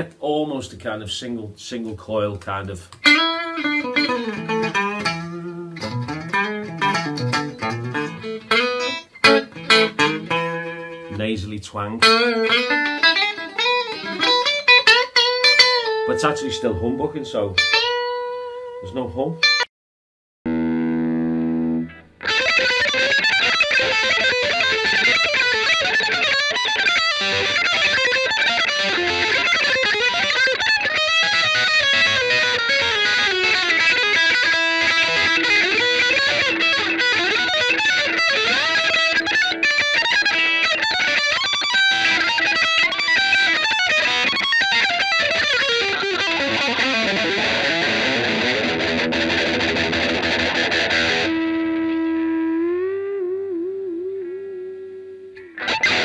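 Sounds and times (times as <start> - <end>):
distorted electric guitar: 2.9 - 11.3, 11.9 - 19.7, 20.5 - 56.0.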